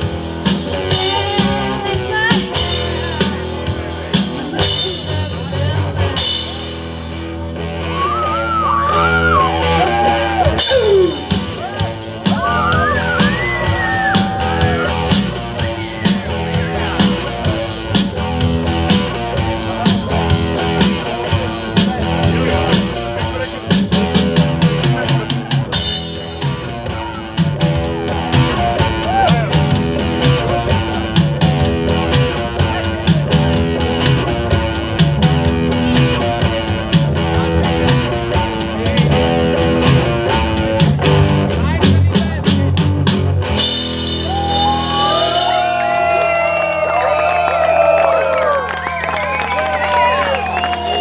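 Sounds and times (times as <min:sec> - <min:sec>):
live rock band playing: 0:00.0 - 0:51.0
audience whooping and shouting: 0:07.8 - 0:17.3, 0:28.9 - 0:29.6, 0:44.1 - 0:51.0.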